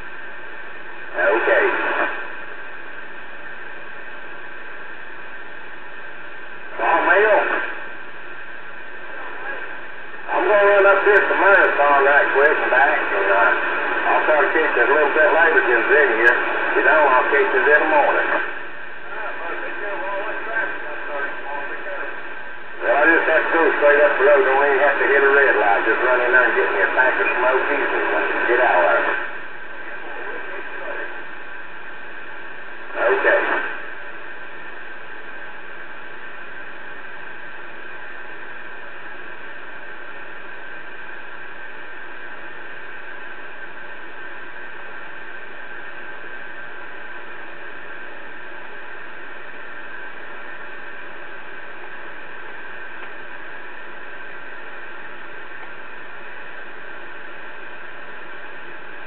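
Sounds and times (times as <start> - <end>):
radio static hiss: 0.0 - 59.0
voices over radio speaker: 1.0 - 2.5, 6.6 - 8.0, 8.6 - 59.0.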